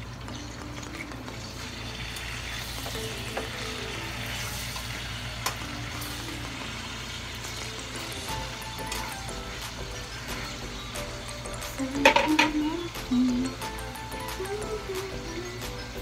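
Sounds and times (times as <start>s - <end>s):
meat sizzling in a pan: 0.0s - 12.9s
background music: 0.0s - 16.0s.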